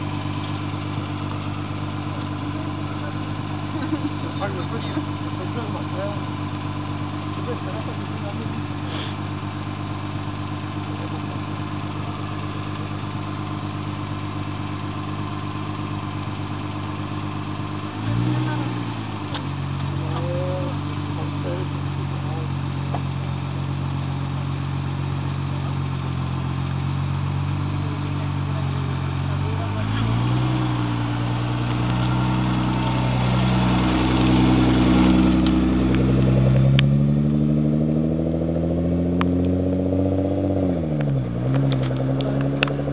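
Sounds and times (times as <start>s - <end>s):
car engine idling and revving: 0.0s - 42.9s
car pulling away: 0.0s - 42.9s.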